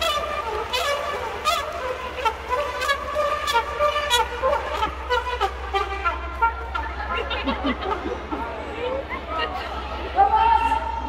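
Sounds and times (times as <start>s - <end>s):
trumpet melody: 0.0s - 8.0s.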